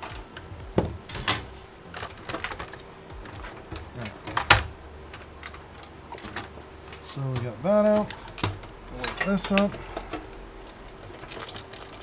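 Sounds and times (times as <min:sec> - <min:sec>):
clicks and knocks of parts handled: 0:00.0 - 0:12.0.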